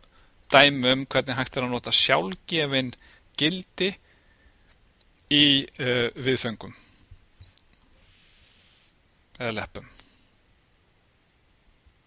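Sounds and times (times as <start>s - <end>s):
soft high hiss: 0.0s - 12.0s.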